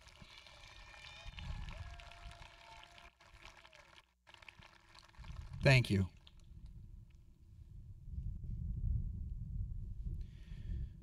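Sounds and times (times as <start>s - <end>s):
crowd clapping faintly: 0.0s - 6.4s.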